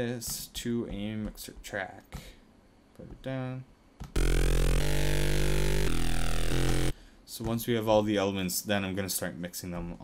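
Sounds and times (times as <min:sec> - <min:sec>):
deep synth bass: 0:04.2 - 0:06.9
sustained electronic chords: 0:04.2 - 0:07.0.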